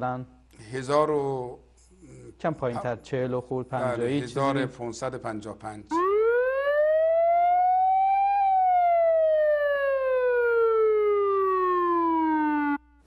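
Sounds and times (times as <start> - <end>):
siren-like wail sound effect: 5.9 - 12.9.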